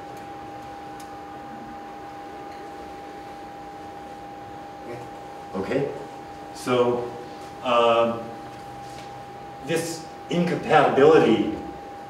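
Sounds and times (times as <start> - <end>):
steady high-pitched hum: 0.0 - 12.0.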